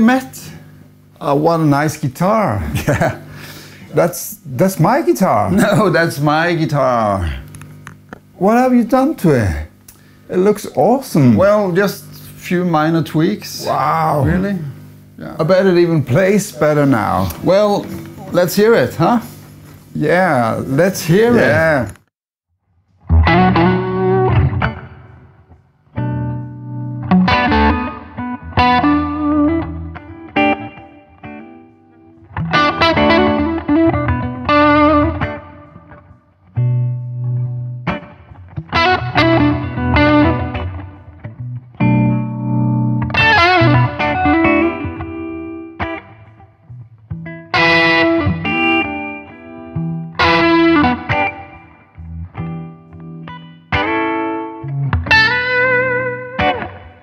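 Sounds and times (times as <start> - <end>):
electric guitars playing: 13.2 - 22.0, 23.0 - 57.0.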